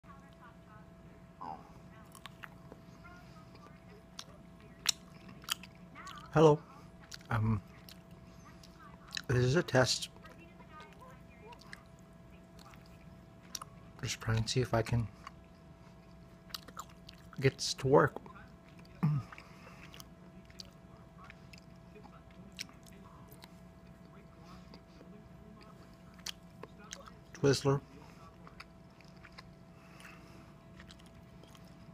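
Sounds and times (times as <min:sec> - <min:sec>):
biting and chewing licorice: 0:03.5 - 0:06.3, 0:15.1 - 0:17.5, 0:18.1 - 0:27.6, 0:28.3 - 0:31.9.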